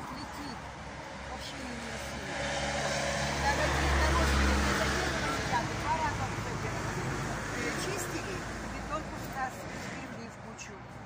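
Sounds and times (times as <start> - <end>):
vehicle passing by: 0.0 - 11.0.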